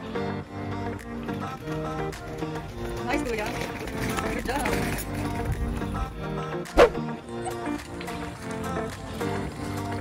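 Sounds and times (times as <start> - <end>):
background music with steady chords: 0.0 - 10.0.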